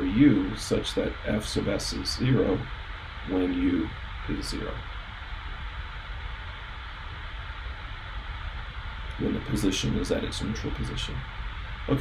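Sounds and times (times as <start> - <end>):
background hiss: 0.0 - 12.0
low hum: 0.0 - 12.0.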